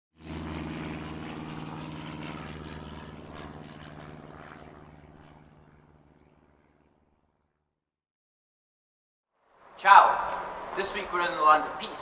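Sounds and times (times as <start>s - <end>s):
engine drone: 0.2s - 7.6s, 9.4s - 12.0s.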